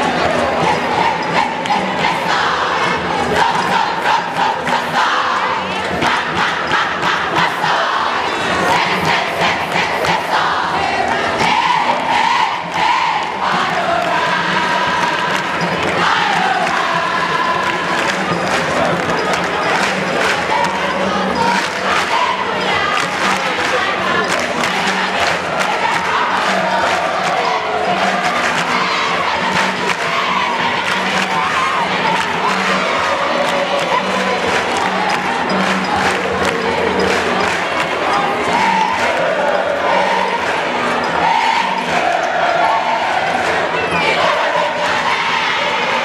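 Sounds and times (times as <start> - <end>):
crowd singing cheering chants: 0.0 - 46.0
fast clapping beat: 8.6 - 46.0.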